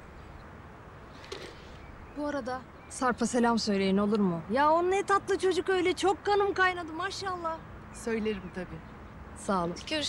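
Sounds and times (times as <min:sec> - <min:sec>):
outdoor ambience: 0:00.0 - 0:10.0.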